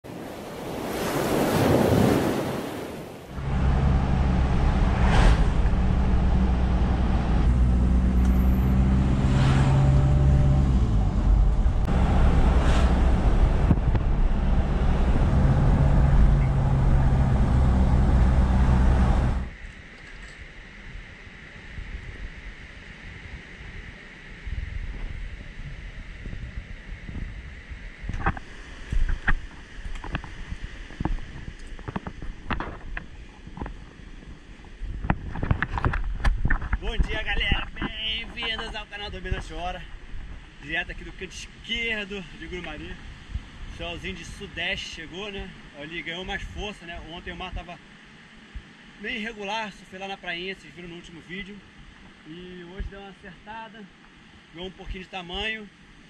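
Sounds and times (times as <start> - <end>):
rush of noise: 3.2 - 19.6
car engine hum and road noise: 3.4 - 19.6
faint steady hiss: 19.5 - 56.0.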